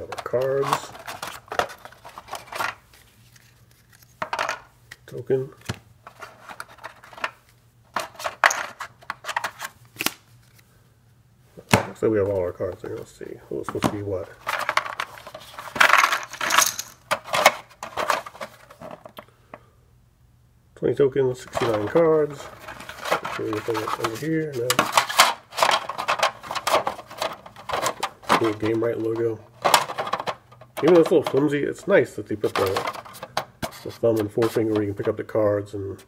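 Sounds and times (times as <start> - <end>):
cardboard cards and tokens clattering: 0.0 - 4.7, 6.0 - 9.7, 13.6 - 19.1, 21.5 - 35.2
game tokens clattering onto table: 15.8 - 17.2
tokens clicking: 16.0 - 17.0.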